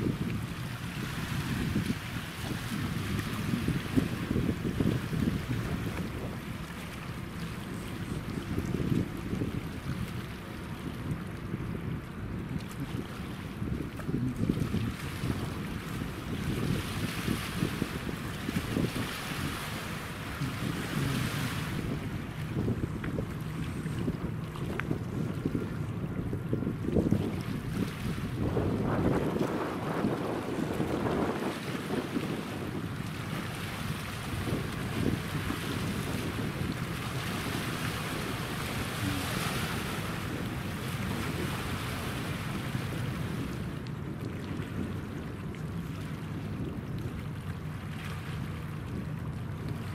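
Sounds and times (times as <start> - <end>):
faint low ship hum: 0.0 - 49.9
river water lapping: 0.0 - 49.9
wind buffeting microphone: 0.0 - 49.9.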